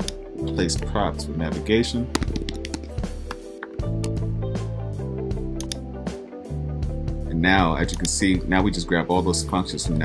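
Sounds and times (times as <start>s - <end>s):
background music with low notes: 0.0s - 10.0s
keyboard key clicks: 2.2s - 4.2s.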